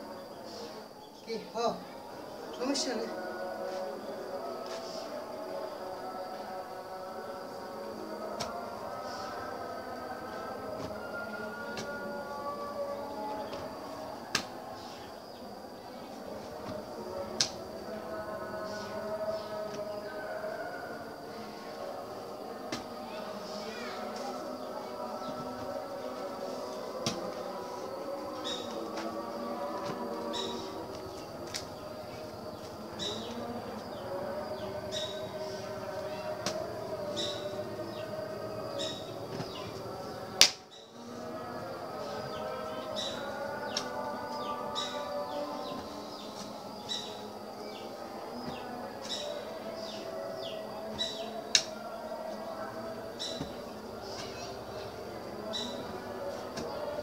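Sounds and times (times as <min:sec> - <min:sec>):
insect or frog drone: 0:00.0 - 0:57.0
steady background hum: 0:03.1 - 0:57.0.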